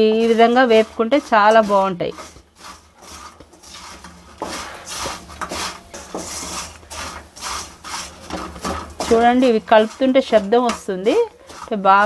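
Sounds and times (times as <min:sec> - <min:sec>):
spatula scraping metal pan: 0:00.0 - 0:12.0.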